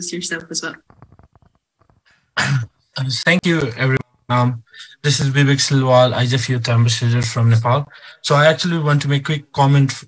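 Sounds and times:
man speaking: 2.4s - 10.0s
man's vocal burst over video call: 2.4s - 10.0s.

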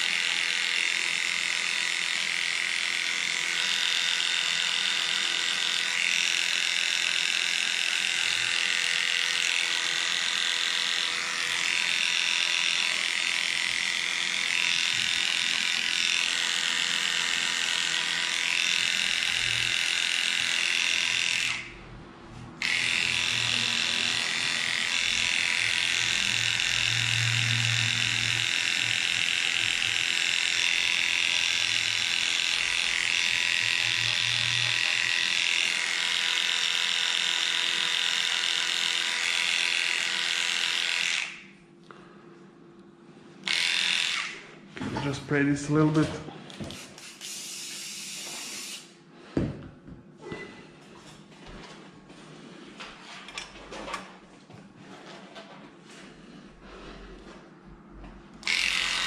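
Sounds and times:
dog clipper running: 0.0s - 21.7s, 22.6s - 41.5s, 43.4s - 44.4s, 58.4s - 59.0s.

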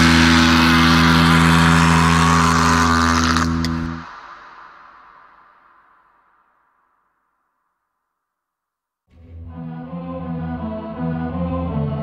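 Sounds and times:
distorted metal guitar chord: 0.0s - 4.0s.

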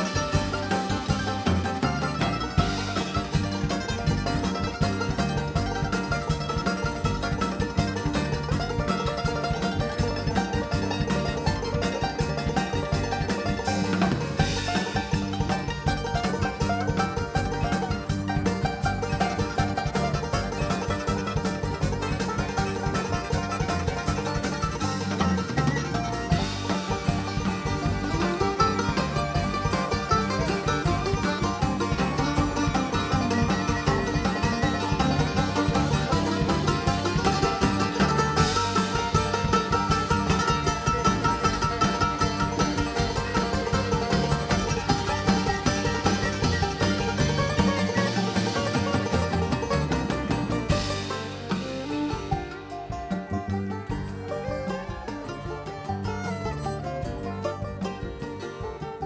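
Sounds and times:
banjo picking: 0.0s - 59.0s
bluegrass band playing: 0.0s - 59.0s
mandolin picking: 0.0s - 59.0s.

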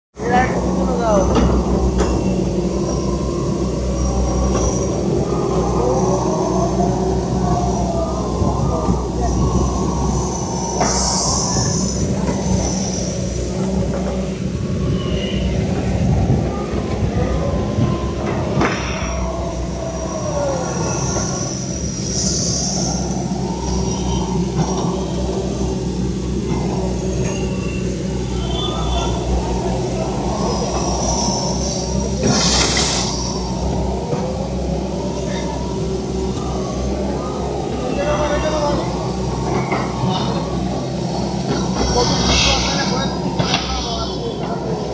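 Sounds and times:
excavator diesel engines running: 0.2s - 44.9s
machine whining tone: 0.2s - 44.9s
people's voices: 0.2s - 44.9s.

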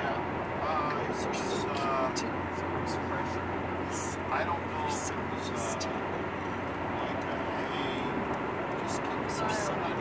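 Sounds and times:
constant low hum: 0.0s - 10.0s
moving car rumble and hiss: 0.0s - 10.0s.

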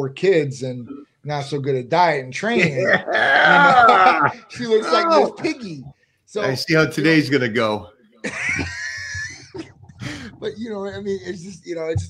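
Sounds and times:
man laughing in wheezing squeal: 2.8s - 5.3s.

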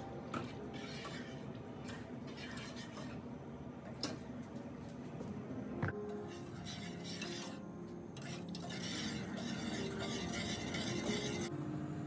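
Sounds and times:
metal spoon scraping a pot: 0.3s - 3.3s, 6.2s - 7.6s, 8.2s - 11.5s.

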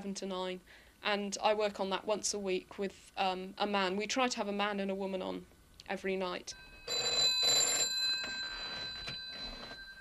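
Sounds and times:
telephone bell ringing: 6.5s - 10.0s.

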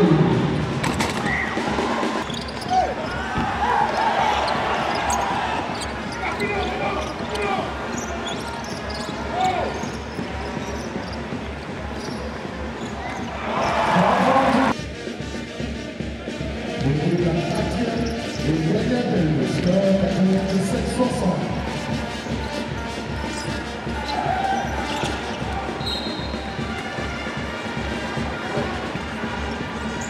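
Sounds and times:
arena noise: 0.0s - 30.0s.

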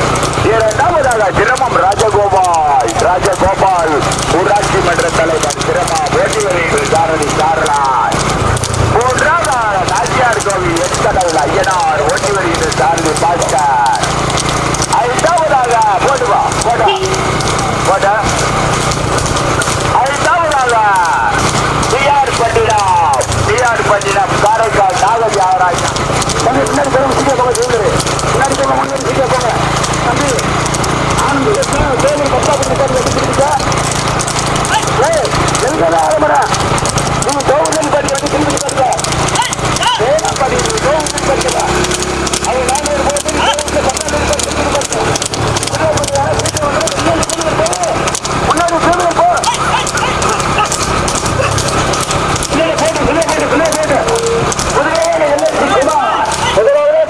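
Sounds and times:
horse hooves clip-clopping on road: 0.0s - 57.0s
people shouting: 31.2s - 36.6s, 37.2s - 57.0s.

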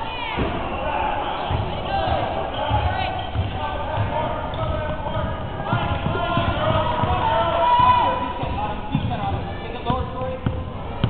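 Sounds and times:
indistinct shouting voices: 0.0s - 9.8s
sneakers squeaking: 0.0s - 11.0s
basketball bouncing on hardwood floor: 1.5s - 11.0s.

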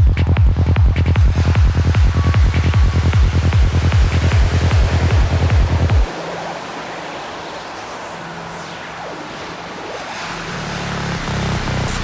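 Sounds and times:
kick drum and bassline: 0.0s - 6.1s
white noise texture: 0.0s - 12.0s.

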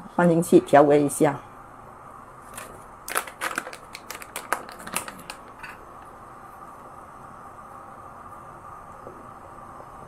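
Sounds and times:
plastic sachet crinkling: 2.5s - 5.7s.

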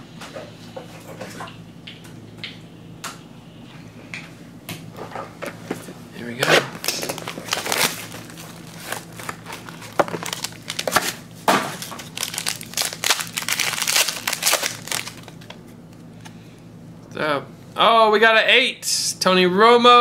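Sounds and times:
foil pack crinkling and tearing: 6.3s - 16.0s
seal tearing off a box: 6.4s - 11.2s, 11.8s - 15.4s.

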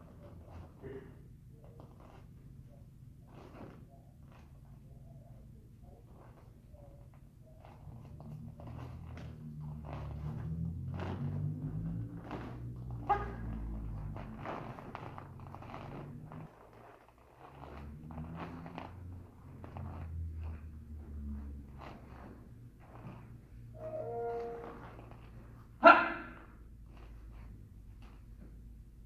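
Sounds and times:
cotton uniform snapping: 7.6s - 22.4s.

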